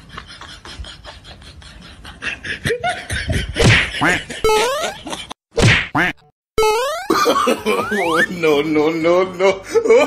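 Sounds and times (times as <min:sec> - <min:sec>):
sharp whack-like hit: 0:05.6 - 0:06.0.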